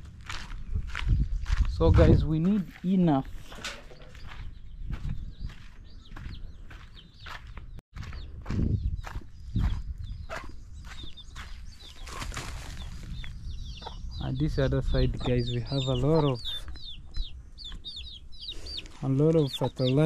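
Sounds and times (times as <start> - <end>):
footsteps on dirt: 0.0 - 14.1
chickens clucking and chirping: 2.0 - 20.0.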